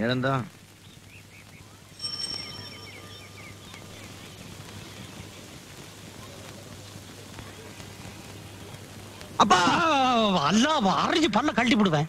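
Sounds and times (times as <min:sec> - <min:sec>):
birds chirping: 0:00.0 - 0:10.6
steady background hiss: 0:00.0 - 0:12.0.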